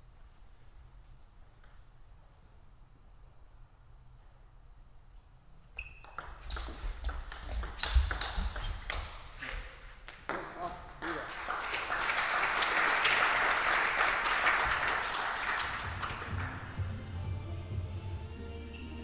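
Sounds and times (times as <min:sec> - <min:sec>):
spectator applause: 0:11.0 - 0:16.8.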